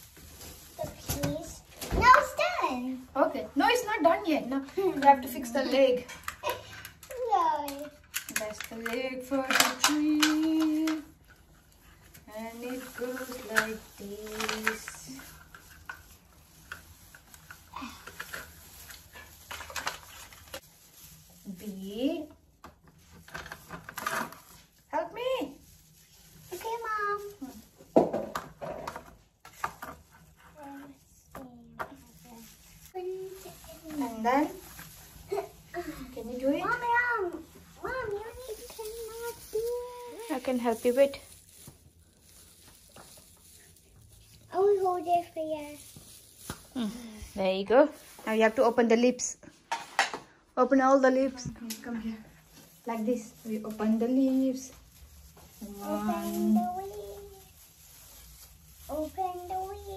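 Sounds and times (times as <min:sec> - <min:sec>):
young child talking: 0:00.8 - 0:03.0, 0:07.1 - 0:08.0, 0:35.8 - 0:40.2, 0:44.5 - 0:45.8, 0:55.8 - 0:57.4, 0:58.9 - 0:59.9
plastic parts clicking and rustling: 0:04.7 - 0:20.6, 0:22.7 - 0:24.6.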